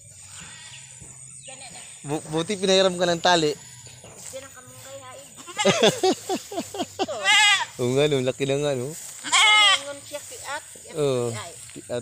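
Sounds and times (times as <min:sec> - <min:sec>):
young goat bleating: 0:05.3 - 0:06.0, 0:07.0 - 0:07.8, 0:09.2 - 0:10.1.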